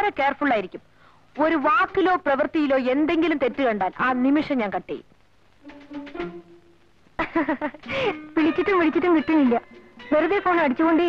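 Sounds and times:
quiet background music: 0.0s - 11.0s
woman speaking sharply: 1.4s - 5.0s.

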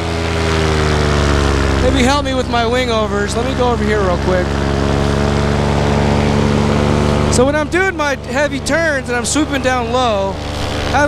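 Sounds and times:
paramotor engine droning: 0.0s - 11.0s.

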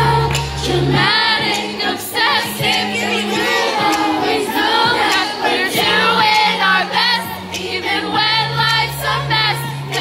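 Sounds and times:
amplified backing music: 0.0s - 10.0s
women singing in harmony: 0.0s - 10.0s.

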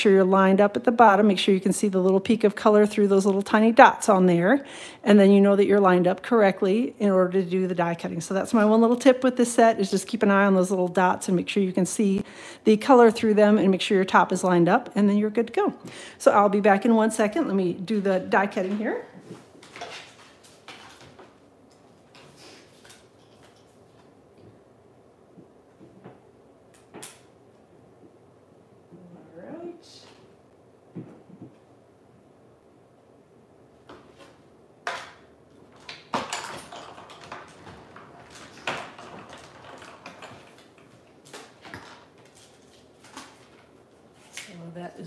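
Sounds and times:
crafting tools clicking and knocking: 34.9s - 42.2s.

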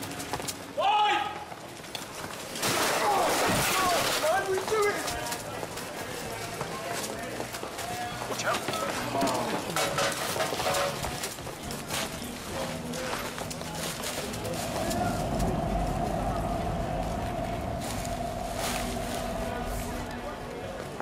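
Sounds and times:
background chatter: 1.7s - 21.0s
footsteps: 3.9s - 21.0s
steady hum: 14.0s - 21.0s.

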